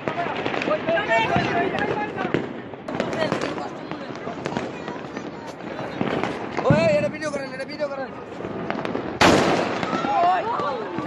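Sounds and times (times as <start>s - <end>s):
fireworks and firecrackers popping: 0.0s - 11.0s
people's raised voices: 9.8s - 11.0s.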